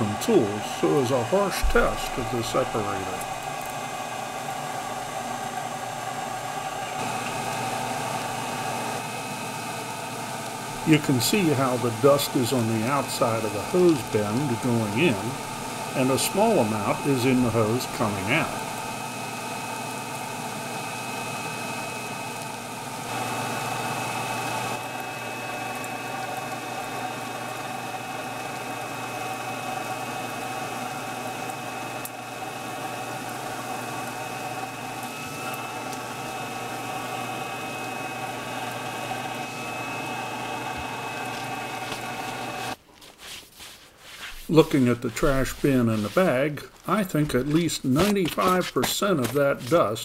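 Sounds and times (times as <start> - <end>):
dust collector blower running: 0.0 - 42.8.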